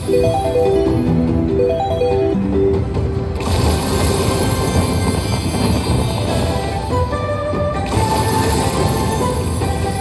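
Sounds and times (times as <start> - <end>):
slot machine jingle: 0.0 - 6.8.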